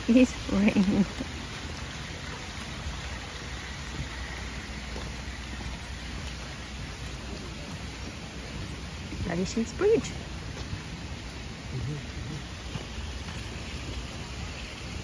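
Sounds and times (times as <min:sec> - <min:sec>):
light rain on pond and foliage: 0:00.0 - 0:15.0.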